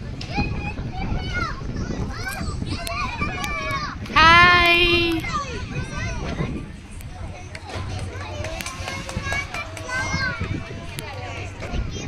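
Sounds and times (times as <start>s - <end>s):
children playing and calling out: 0.1s - 12.0s.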